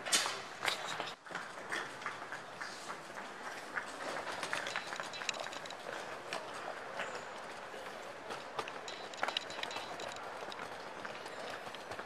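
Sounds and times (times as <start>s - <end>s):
murmur of airport crowd: 1.6s - 12.0s.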